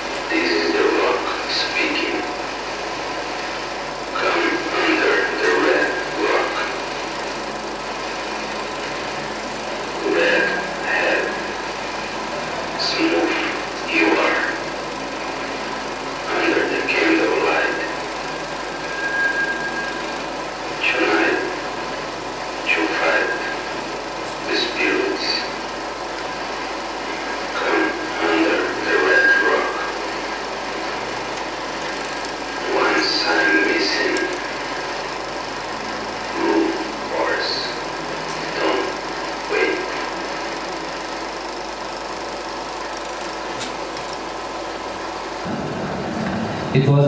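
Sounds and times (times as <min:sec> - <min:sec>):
steady mechanical whir: 0:00.0 - 0:47.0.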